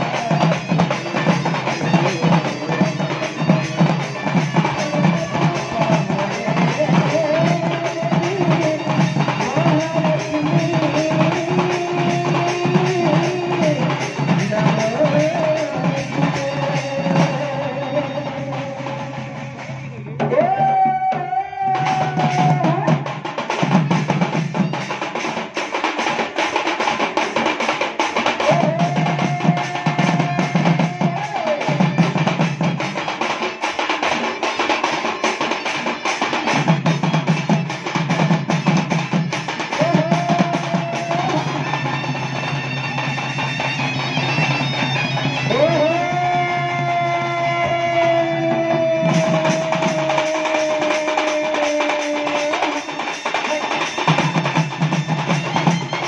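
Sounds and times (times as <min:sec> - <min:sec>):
fast drumming: 0:00.0 - 0:56.0.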